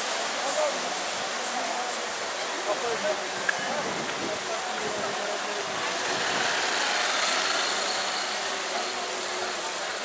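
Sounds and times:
crowd noise: 0.0 - 10.0
motor traffic: 0.0 - 10.0.

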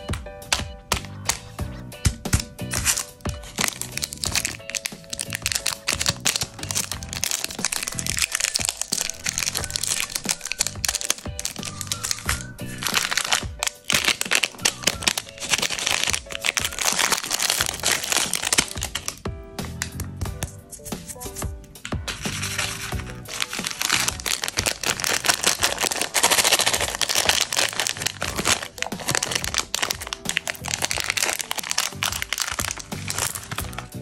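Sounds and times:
background music: 0.0 - 34.0
plastic wrappers crinkling: 2.3 - 20.0, 20.6 - 34.0.

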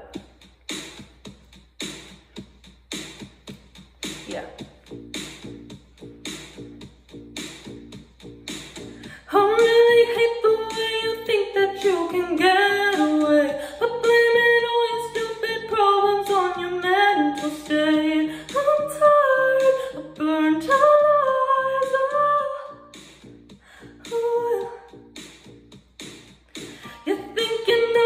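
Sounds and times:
woman singing pop ballad: 9.1 - 22.8, 24.0 - 25.0, 26.8 - 28.0.

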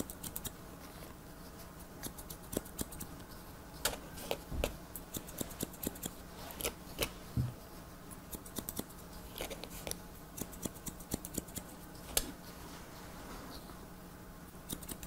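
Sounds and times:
scissors snipping hair: 0.0 - 0.6, 2.0 - 3.1, 5.0 - 6.8, 8.3 - 12.3, 14.7 - 15.0.

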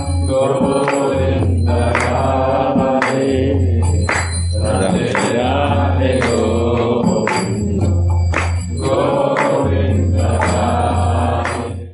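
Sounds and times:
sharp rhythmic accent: 0.0 - 11.9
mantra chanting over drone: 0.2 - 3.8, 4.6 - 8.1.

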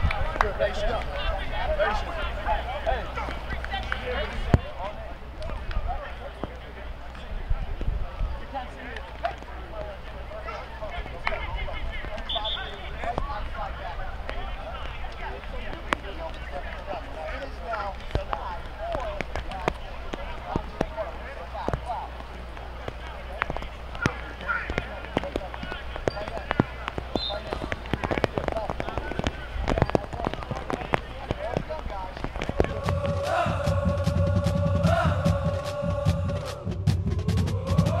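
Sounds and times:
faint shouting voices: 0.0 - 36.8
sharp clacks of football pads: 14.2 - 33.1
music with strong bass: 32.7 - 38.0.

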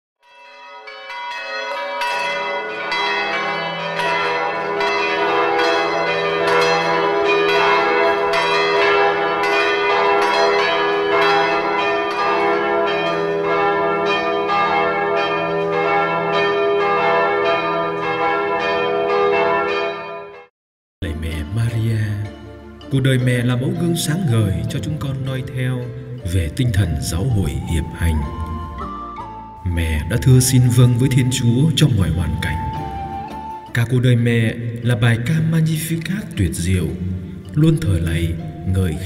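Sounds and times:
church bells ringing: 0.2 - 22.1, 22.8 - 39.0.

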